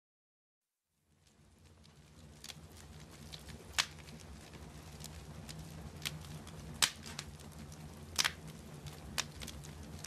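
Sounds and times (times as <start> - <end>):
wood fire crackling: 0.9 - 10.0.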